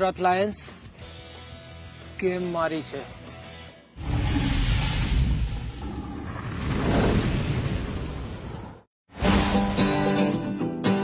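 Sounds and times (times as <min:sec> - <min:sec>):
explosion: 0:04.0 - 0:08.8.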